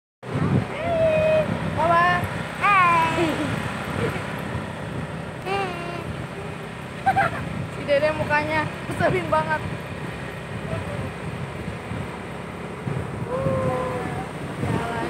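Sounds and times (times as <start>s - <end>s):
low background rumble: 0.3s - 15.0s.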